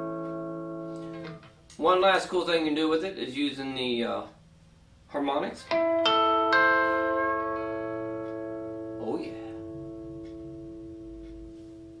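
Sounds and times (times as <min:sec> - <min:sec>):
electric guitar harmonics ringing: 0:00.0 - 0:02.4, 0:05.6 - 0:12.0.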